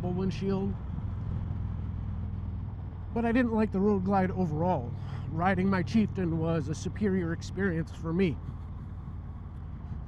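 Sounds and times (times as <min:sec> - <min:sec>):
motorcycle engine rumble: 0:00.0 - 0:10.0
wind and road noise: 0:00.0 - 0:10.0.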